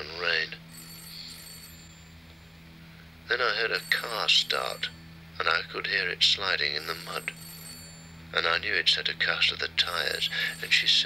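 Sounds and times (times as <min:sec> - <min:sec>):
steady low hum: 0:00.0 - 0:11.0
faint high ringing tone: 0:00.7 - 0:02.6, 0:03.4 - 0:05.8, 0:06.6 - 0:08.7, 0:09.8 - 0:11.0.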